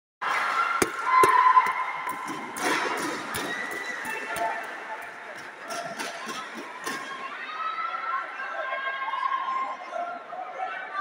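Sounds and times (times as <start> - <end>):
crowd voices and shouts: 0.2 - 11.0.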